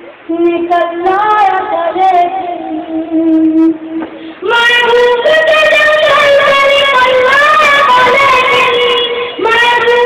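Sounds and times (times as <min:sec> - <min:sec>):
boy singing: 0:00.3 - 0:10.0.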